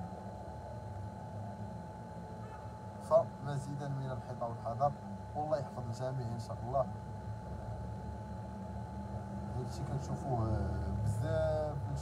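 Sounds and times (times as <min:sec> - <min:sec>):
faint steady whine: 0:00.0 - 0:12.0.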